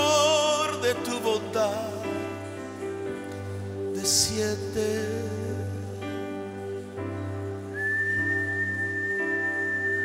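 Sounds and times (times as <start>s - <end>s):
sustained worship music chords: 0.0s - 10.0s
high whistle-like note: 7.7s - 10.0s.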